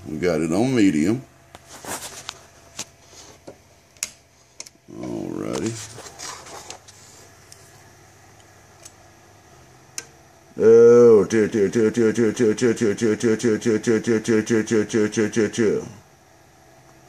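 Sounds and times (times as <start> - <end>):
murmured vocal sound: 10.6 - 16.0.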